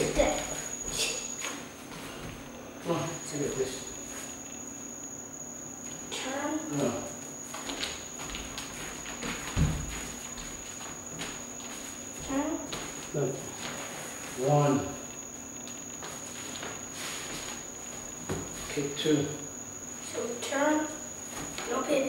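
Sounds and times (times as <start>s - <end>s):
high-pitched whine: 0.0s - 22.0s
soft footsteps: 7.4s - 18.9s
heavy footfall on hardwood floor: 8.2s - 10.6s.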